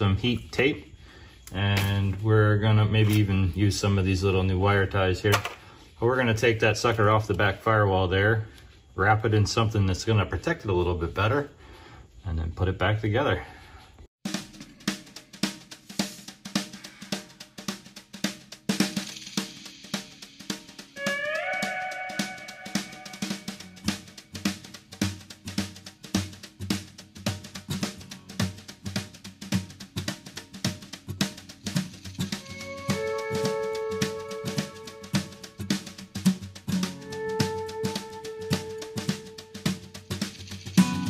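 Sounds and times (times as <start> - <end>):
drum-kit beat: 14.2 - 41.0
held melodic notes with slide: 21.0 - 23.9, 32.3 - 41.0.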